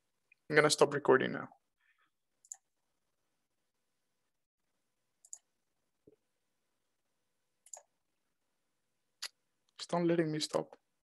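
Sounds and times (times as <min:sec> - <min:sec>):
faint mouse clicks: 0:05.2 - 0:06.2, 0:07.6 - 0:07.9.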